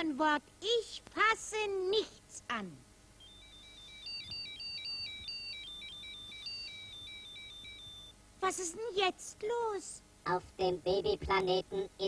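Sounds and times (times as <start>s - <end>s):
electronic beeping tune: 3.2s - 8.2s.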